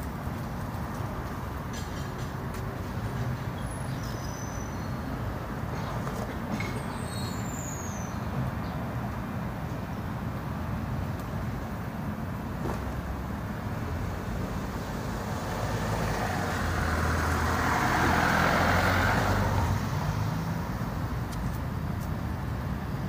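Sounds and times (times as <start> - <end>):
vehicle passing: 15.0 - 20.8.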